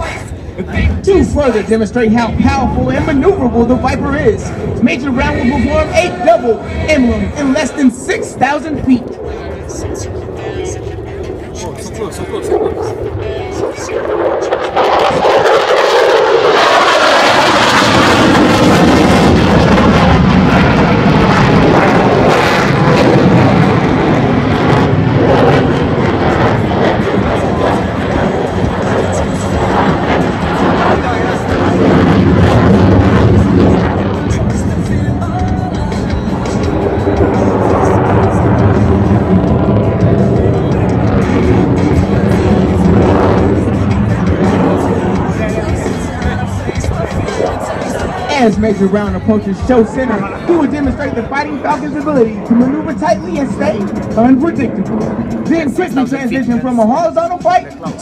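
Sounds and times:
jet engine roaring: 0.0 - 58.0
music: 9.1 - 14.0, 26.4 - 58.0.

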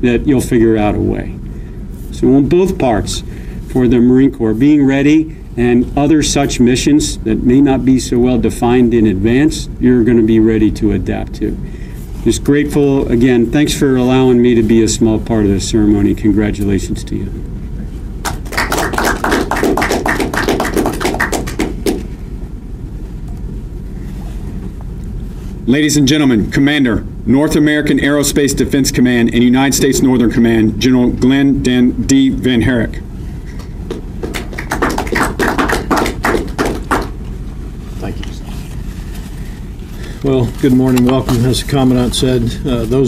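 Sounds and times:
low steady room hum: 0.0 - 43.0
footsteps across a room: 17.8 - 22.2, 33.4 - 41.8
audience applauding: 18.2 - 22.1, 33.6 - 37.2.

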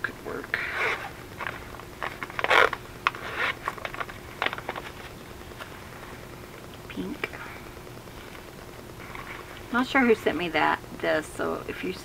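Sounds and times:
plastic bags rustling and crinkling: 0.6 - 6.2.

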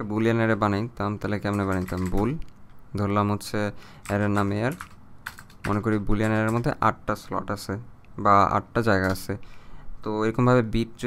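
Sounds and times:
person speaking: 0.0 - 11.0
keyboard typing clicks: 1.5 - 2.6, 4.0 - 6.8, 9.0 - 9.3.

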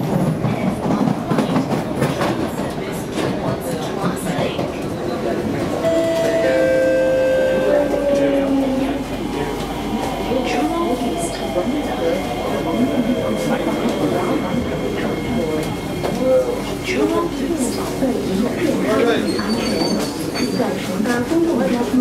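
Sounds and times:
train wheels clattering on rails: 0.0 - 6.4.

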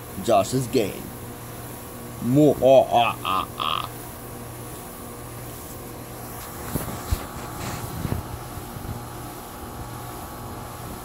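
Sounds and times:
air rushing off fan blades: 0.0 - 11.0
ceiling fan motor hum: 0.0 - 11.0.

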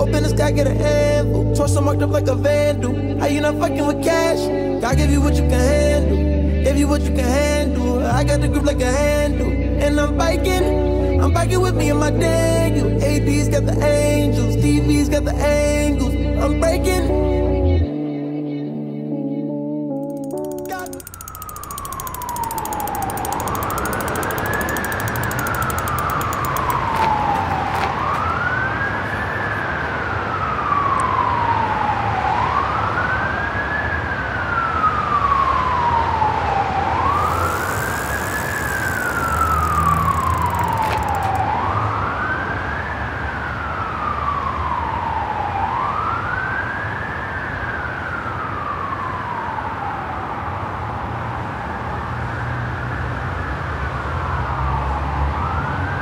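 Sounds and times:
siren wailing: 34.4 - 50.2.

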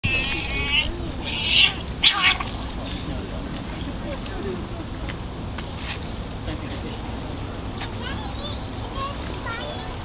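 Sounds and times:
otters squeaky chirping: 0.0 - 3.0.

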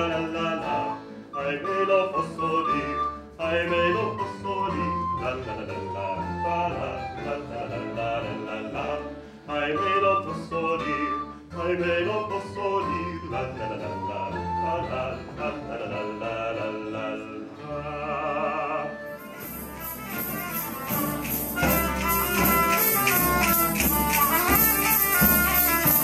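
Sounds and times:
plucked strings: 19.2 - 26.0.

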